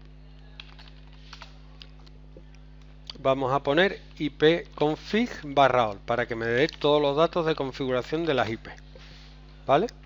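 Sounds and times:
faint steady hum: 0.0s - 10.0s
computer keyboard typing: 0.6s - 1.5s.

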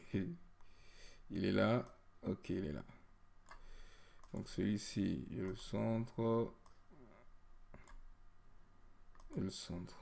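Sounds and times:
faint computer mouse clicks: 3.4s - 4.5s, 9.1s - 9.5s.

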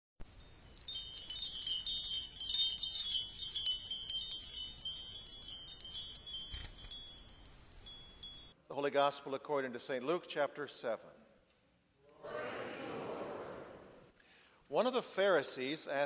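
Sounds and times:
chimes ringing: 0.2s - 8.6s.

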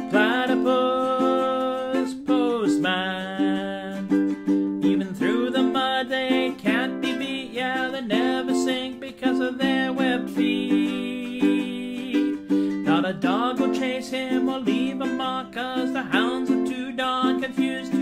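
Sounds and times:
man singing: 0.0s - 18.0s
ukulele strumming: 0.0s - 18.0s.

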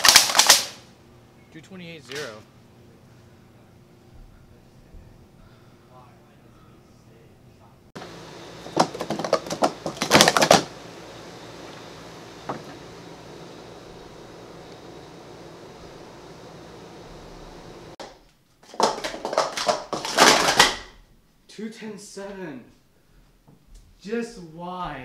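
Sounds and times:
plastic cups clattering: 8.7s - 10.7s, 18.6s - 20.9s.

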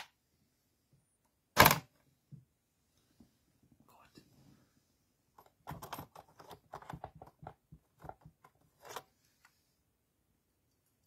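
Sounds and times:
cassette case clicking and clattering: 1.6s - 1.9s, 5.4s - 9.1s.

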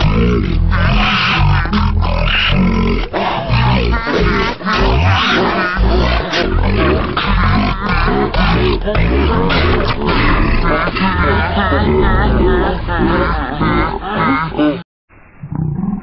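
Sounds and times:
cartoon pigs laughing and snorting: 0.0s - 14.8s
slowed deep grunts: 0.0s - 14.8s.

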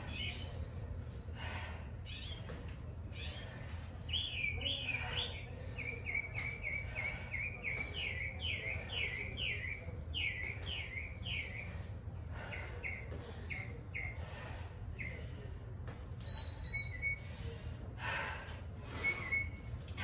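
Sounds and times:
songbird chirping: 2.1s - 14.2s.

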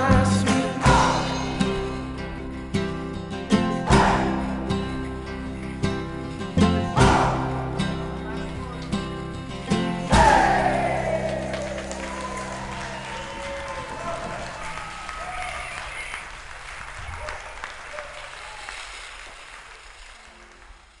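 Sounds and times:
acoustic folk-pop chord: 0.0s - 14.4s
applause and cheering: 7.0s - 21.0s.

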